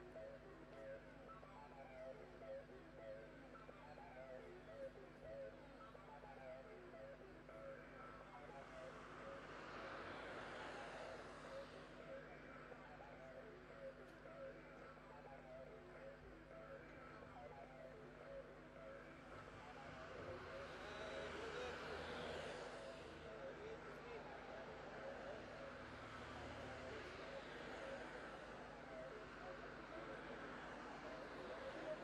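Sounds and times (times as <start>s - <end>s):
faint distant voices: 0.0s - 32.0s
low steady road hum: 5.0s - 32.0s.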